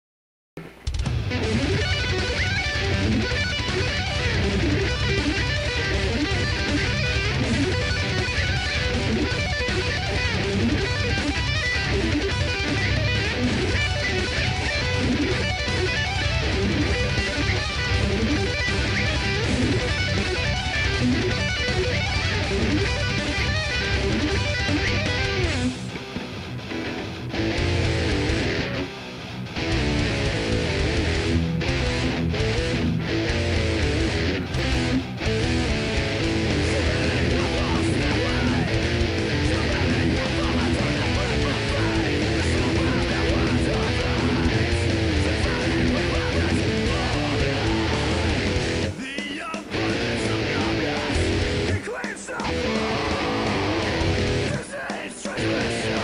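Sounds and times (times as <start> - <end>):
electric guitar metal riffs: 0.6 - 56.0.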